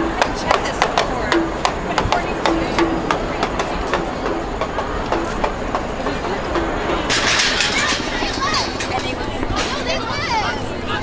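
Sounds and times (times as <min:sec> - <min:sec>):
pots beaten with sticks: 0:00.0 - 0:08.0
voices of marching crowd: 0:00.0 - 0:11.0.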